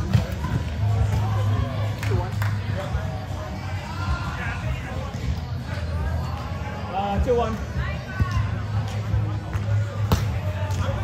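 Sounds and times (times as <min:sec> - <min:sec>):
background music: 0:00.0 - 0:11.0
volleyball struck by hand: 0:10.0 - 0:10.4.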